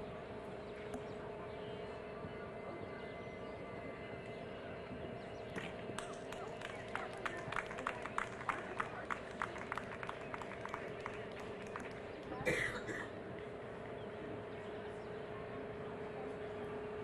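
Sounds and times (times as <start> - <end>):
steady hum: 0.0 - 17.0
person coughing: 12.5 - 13.1.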